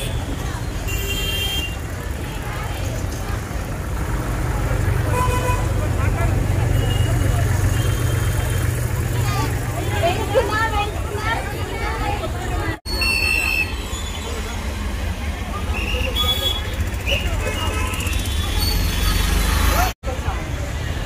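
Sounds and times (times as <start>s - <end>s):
low rumble of traffic: 0.0s - 21.0s
scattered voices: 1.8s - 18.8s.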